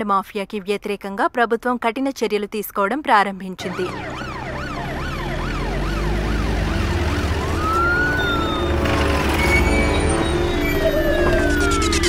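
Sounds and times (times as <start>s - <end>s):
police siren yelping and wailing: 3.6s - 12.0s.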